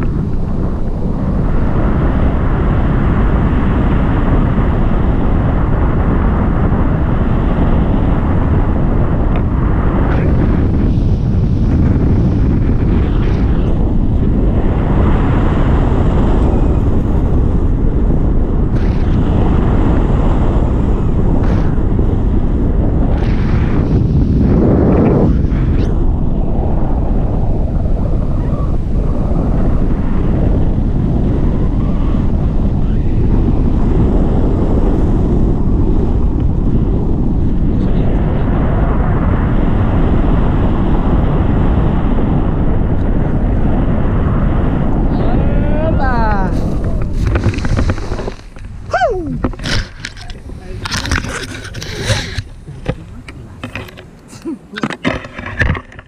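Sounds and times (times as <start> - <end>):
wind buffeting microphone: 0.0 - 56.0.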